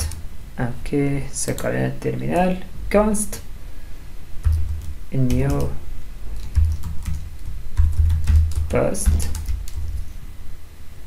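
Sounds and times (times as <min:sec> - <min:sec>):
typing on keyboard: 0:04.4 - 0:05.8, 0:06.4 - 0:10.0
person speaking a word: 0:08.7 - 0:09.4.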